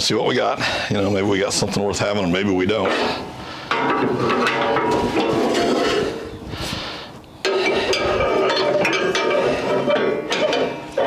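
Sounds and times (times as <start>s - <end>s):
scraping and clinking: 2.9s - 6.3s, 7.4s - 11.0s.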